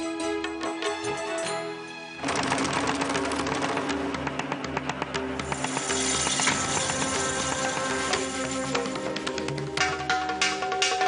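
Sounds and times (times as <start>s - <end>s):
ticking percussion: 0.2s - 11.0s.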